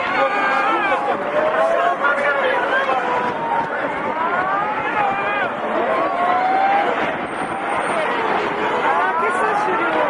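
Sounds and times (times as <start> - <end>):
flood water rushing roar: 0.0 - 10.0.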